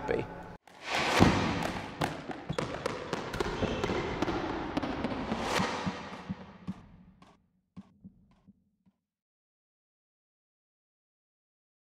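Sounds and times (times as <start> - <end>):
sharp knocks and clicks: 5.8 - 8.6.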